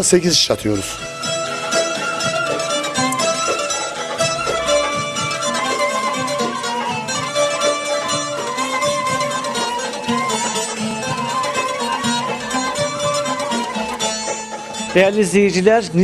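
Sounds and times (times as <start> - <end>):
plucked string instrument music: 0.0 - 16.0.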